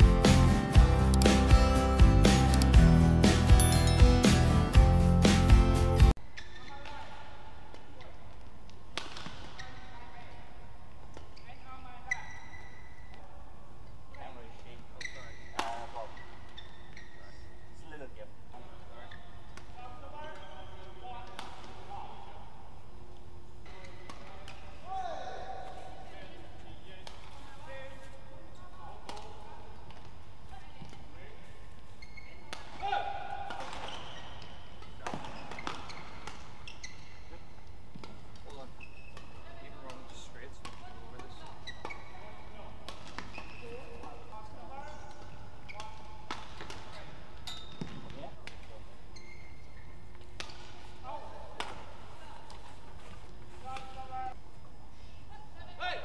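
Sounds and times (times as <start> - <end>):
shoes squeaking on court floor: 3.5 - 4.7, 6.2 - 7.0, 7.7 - 22.1, 23.2 - 32.9, 33.5 - 54.8
voices in a hall: 6.2 - 35.5, 37.2 - 56.0
racket striking shuttlecock: 8.9 - 9.6, 45.8 - 46.9.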